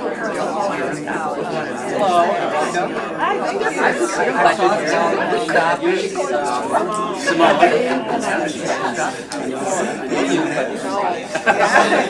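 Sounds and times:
many people talking: 0.0 - 12.0.

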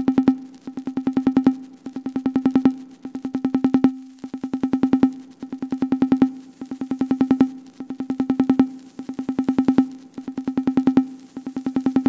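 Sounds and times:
fast repeating electronic clicks: 0.0 - 12.0.

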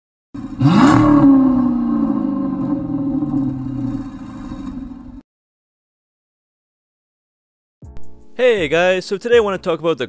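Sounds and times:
car engine revving: 0.4 - 5.2.

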